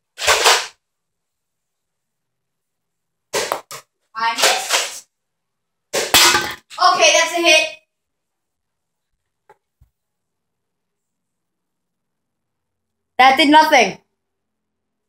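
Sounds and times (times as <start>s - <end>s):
boy talking: 4.2s - 4.7s, 6.6s - 7.9s, 13.2s - 14.0s.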